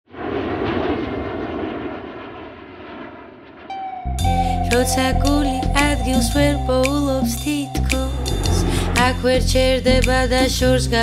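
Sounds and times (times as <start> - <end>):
held musical note: 3.7 - 9.6
rushing noisy ambience: 3.7 - 10.0.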